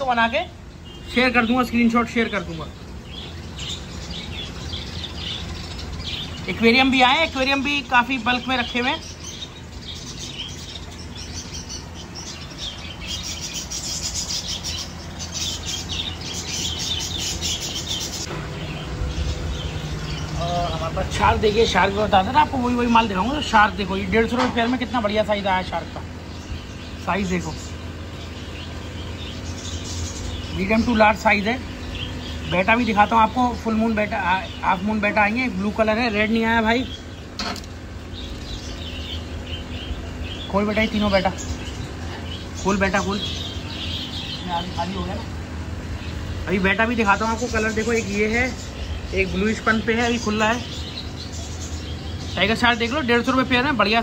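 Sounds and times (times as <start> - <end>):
low steady hum: 0.0 - 54.0
small birds chirping: 0.0 - 54.0.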